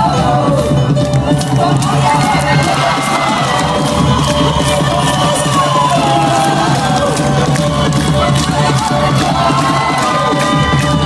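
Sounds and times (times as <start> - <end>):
crowd cheering: 0.0 - 11.0
live band music: 0.0 - 11.0.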